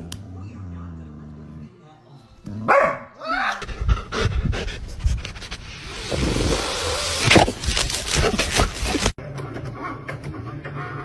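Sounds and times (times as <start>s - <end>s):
dog panting and snuffling: 3.6s - 5.6s.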